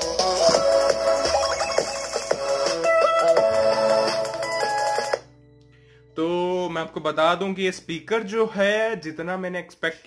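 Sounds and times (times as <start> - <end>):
electronic music from small speaker: 0.0 - 8.9.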